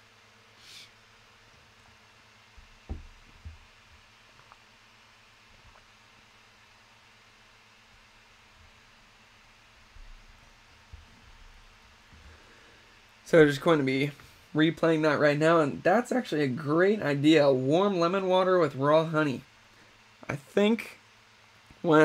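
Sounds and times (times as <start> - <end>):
faint steady hiss: 0.0 - 22.0
soft low thumps: 2.5 - 4.1.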